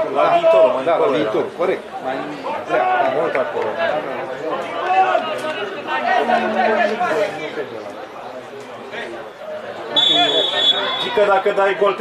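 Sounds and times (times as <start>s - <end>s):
men calling out and chattering: 0.0s - 12.0s.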